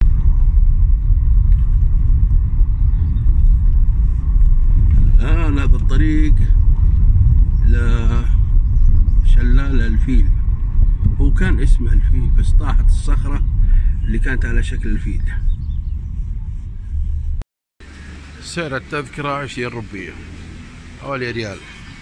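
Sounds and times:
car engine and tyres rumbling: 0:00.0 - 0:22.0
voices: 0:05.1 - 0:06.6, 0:07.6 - 0:08.4, 0:09.2 - 0:10.4, 0:11.0 - 0:15.5, 0:18.2 - 0:20.3, 0:21.0 - 0:22.0.

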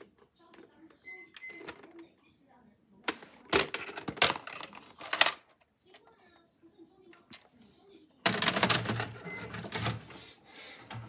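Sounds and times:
cassette loading mechanism clattering: 0:03.5 - 0:05.4.

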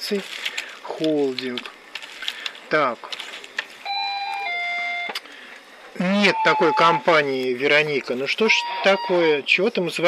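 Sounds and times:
electronic two-tone beep: 0:03.9 - 0:05.1, 0:06.2 - 0:07.1, 0:08.5 - 0:09.3.

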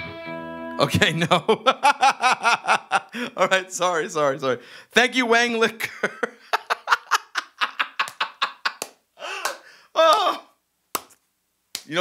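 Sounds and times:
man laughing: 0:00.9 - 0:03.7, 0:05.8 - 0:10.4.

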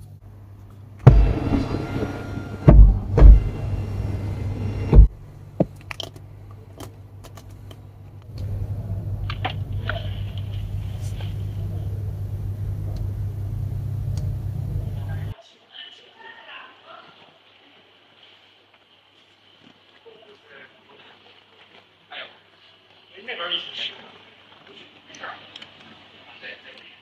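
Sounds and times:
sunroof motor whine: 0:00.0 - 0:05.6, 0:08.0 - 0:15.4
steady low hum: 0:00.0 - 0:15.4
heavy clunks: 0:01.0 - 0:05.2
thump: 0:01.1 - 0:04.0, 0:04.8 - 0:05.1.

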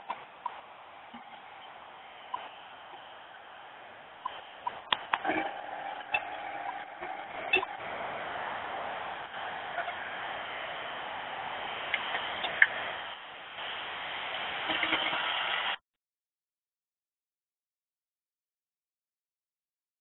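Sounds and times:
trucks rushing: 0:00.0 - 0:15.8
sharp clicks and knocks: 0:04.2 - 0:05.5.

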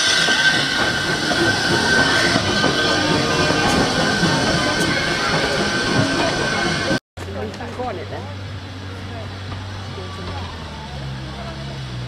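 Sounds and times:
train rumbling along track: 0:00.0 - 0:12.0.

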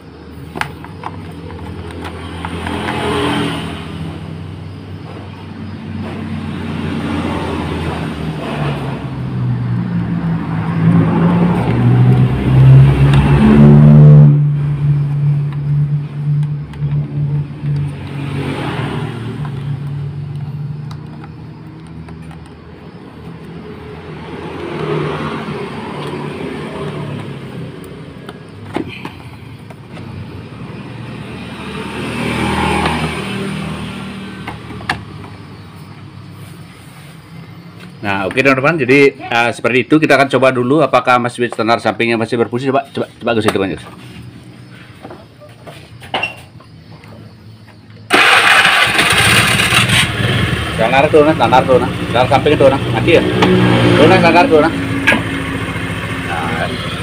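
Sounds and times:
motorcycle engine revving: 0:01.4 - 0:36.7, 0:48.1 - 0:57.0.

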